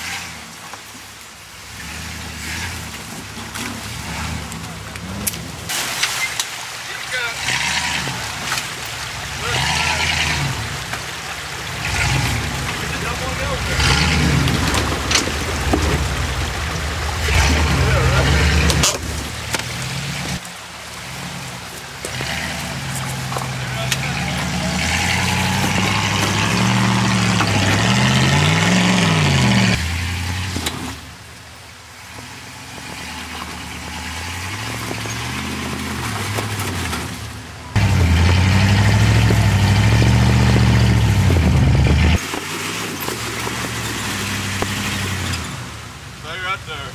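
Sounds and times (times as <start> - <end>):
creek water rushing: 0.0 - 46.9
pickup engine running low revs: 7.1 - 46.2.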